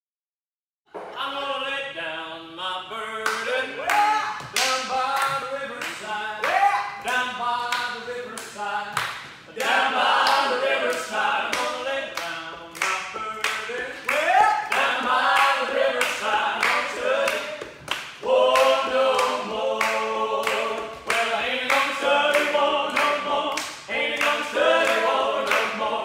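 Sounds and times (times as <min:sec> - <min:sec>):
voices singing together: 0:01.0 - 0:26.0.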